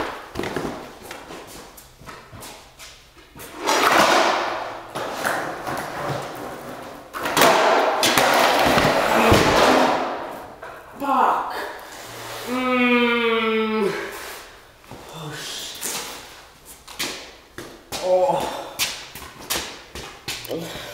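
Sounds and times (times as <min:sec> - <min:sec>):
thumping on concrete floor: 0:07.1 - 0:10.4.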